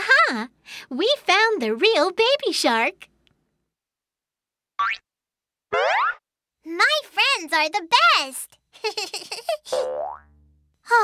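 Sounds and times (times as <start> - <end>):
click: 3.2 - 3.5
cartoon boing sound effect: 5.7 - 6.2, 9.7 - 10.4.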